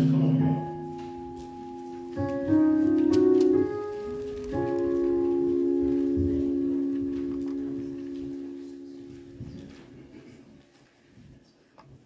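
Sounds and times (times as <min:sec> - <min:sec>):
electronic keyboard chord: 0:00.0 - 0:10.4.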